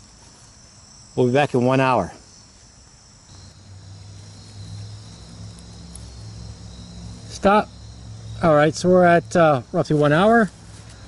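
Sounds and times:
crickets trilling: 0:00.0 - 0:11.0
low steady hum: 0:02.1 - 0:11.0.

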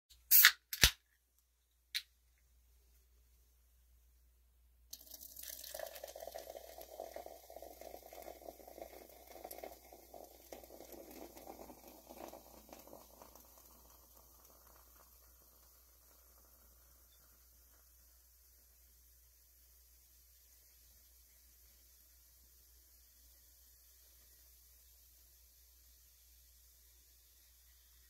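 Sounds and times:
soda pouring and fizzing: 0:04.9 - 0:28.0.

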